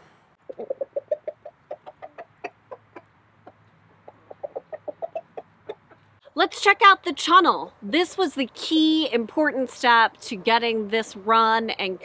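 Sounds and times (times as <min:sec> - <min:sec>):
chickens clucking: 0:00.4 - 0:06.2.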